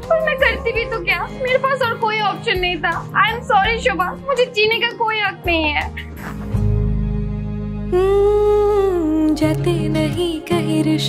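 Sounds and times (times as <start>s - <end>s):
voice humming long note: 7.9s - 9.5s.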